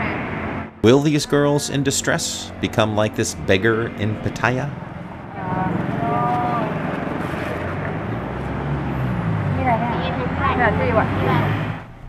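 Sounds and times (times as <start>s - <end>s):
busy street noise: 0.0s - 12.0s
vehicle engine running: 0.0s - 12.0s
person speaking: 0.8s - 4.8s.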